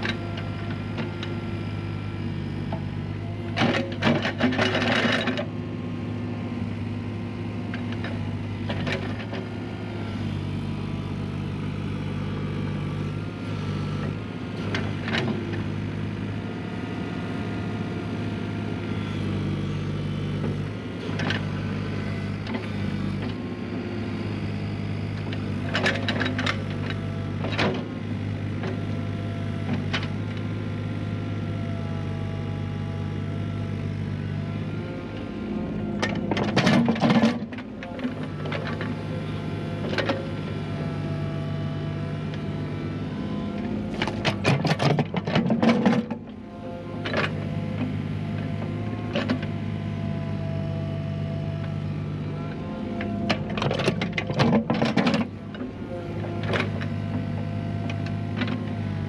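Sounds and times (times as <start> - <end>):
excavator diesel engine running: 0.0 - 59.0
excavator digging soil: 0.0 - 59.0.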